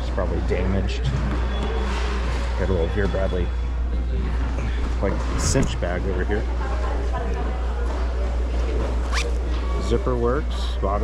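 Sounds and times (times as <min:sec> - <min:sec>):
bag zipper zipping: 0:09.0 - 0:09.4.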